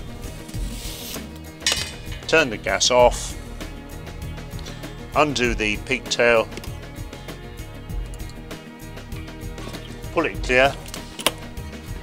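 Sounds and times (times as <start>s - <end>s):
webbing strap rustling: 0.0s - 2.4s, 9.4s - 11.5s
background music: 0.0s - 12.0s.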